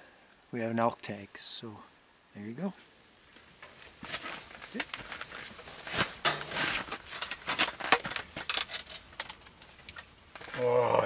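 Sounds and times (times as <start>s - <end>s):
rustling: 2.7s - 10.7s.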